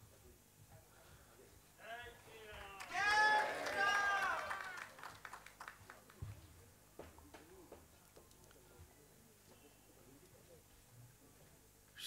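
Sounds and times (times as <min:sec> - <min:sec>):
quiet murmurs: 0:00.0 - 0:02.8, 0:04.8 - 0:12.0.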